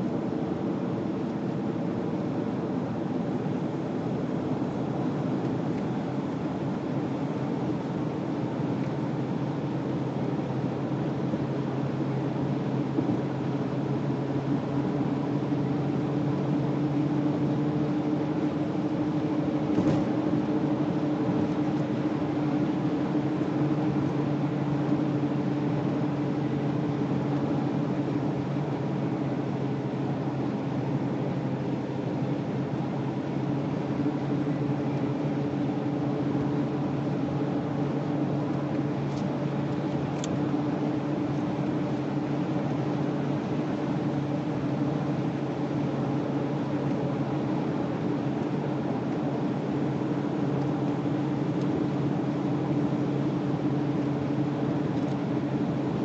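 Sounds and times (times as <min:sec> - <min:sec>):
car engine droning: 0:00.0 - 0:56.0
road noise: 0:00.0 - 0:56.0.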